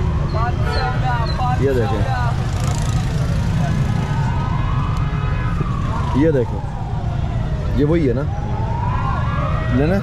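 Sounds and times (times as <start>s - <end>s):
low traffic rumble: 0.0s - 10.0s
siren wailing: 3.3s - 10.0s.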